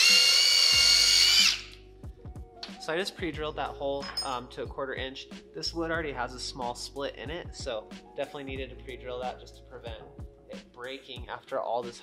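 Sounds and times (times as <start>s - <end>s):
cordless drill whining: 0.0s - 1.8s.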